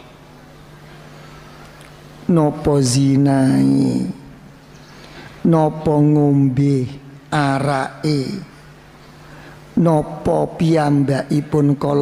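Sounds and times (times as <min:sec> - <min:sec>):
faint background hiss: 0:00.0 - 0:12.0
steady low hum: 0:00.0 - 0:12.0.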